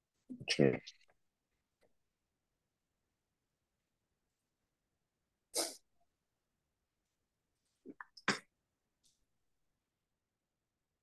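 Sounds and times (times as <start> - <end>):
person sneezing: 5.5 - 5.8.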